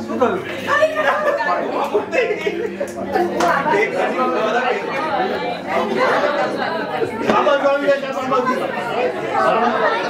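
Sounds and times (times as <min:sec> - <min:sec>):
men and women chattering: 0:00.0 - 0:10.0.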